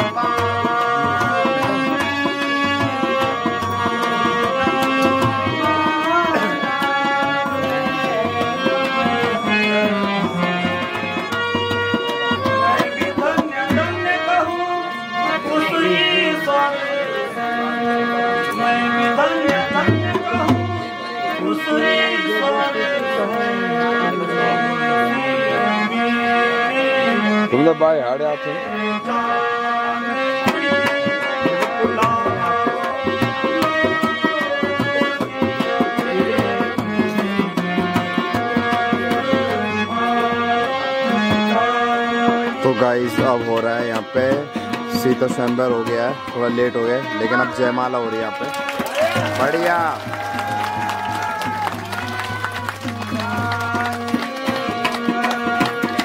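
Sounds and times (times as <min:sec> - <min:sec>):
tabla drum strokes: 0:00.0 - 0:14.7
harmonium melody: 0:00.0 - 0:56.0.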